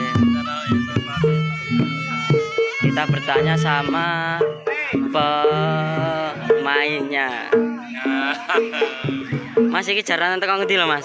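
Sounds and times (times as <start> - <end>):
reedy wind instrument melody: 0.0 - 10.0
hand drum strokes: 0.0 - 11.0.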